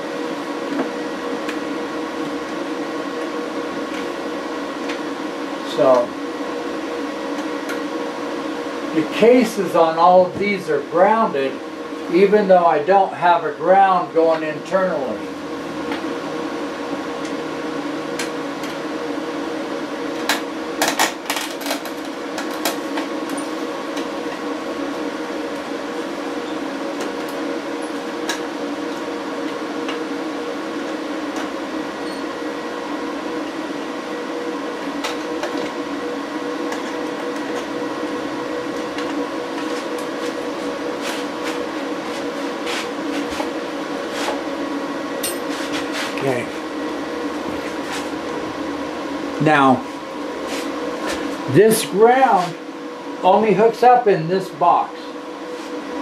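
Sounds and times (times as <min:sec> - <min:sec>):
inverters humming and whirring: 0:00.0 - 0:56.0.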